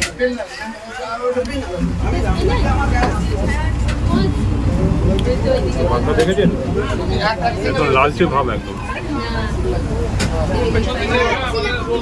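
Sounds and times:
boat engine rumbling: 0.0s - 12.0s
people talking: 0.0s - 12.0s.

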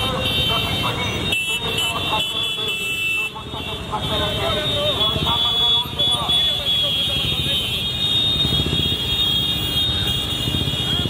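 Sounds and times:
horns sounding: 0.0s - 11.0s
motorcycles running: 0.0s - 11.0s.

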